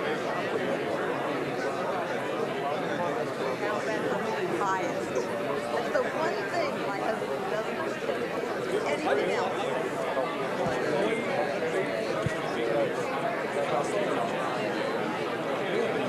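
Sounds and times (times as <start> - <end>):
audience chatter: 0.0 - 16.0.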